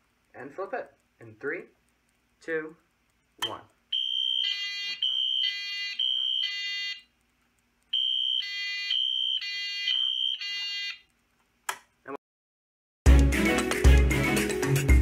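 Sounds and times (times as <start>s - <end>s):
fire alarm horn pulses: 3.9s - 7.0s, 8.0s - 11.0s.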